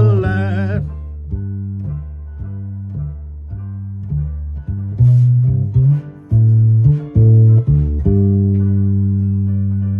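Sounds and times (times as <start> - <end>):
bass guitar notes: 0.0 - 9.9.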